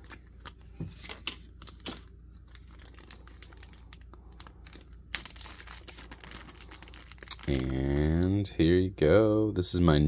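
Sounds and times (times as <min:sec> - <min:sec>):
plastic bag crinkling: 0:00.0 - 0:08.5.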